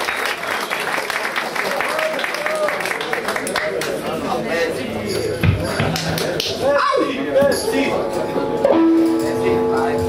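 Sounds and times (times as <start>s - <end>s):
electric guitar notes ringing: 7.8s - 10.0s.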